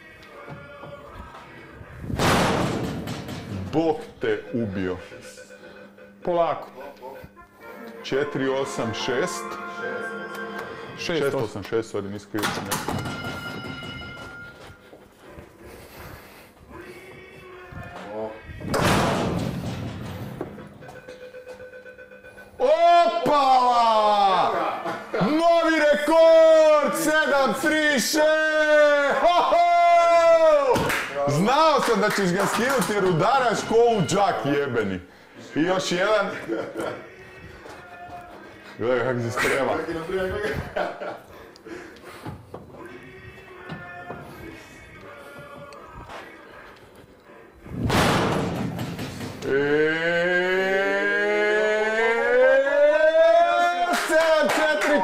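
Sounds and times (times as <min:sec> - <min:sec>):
man shouting drawn-out syllables: 0:22.6 - 0:30.8, 0:49.5 - 0:55.0.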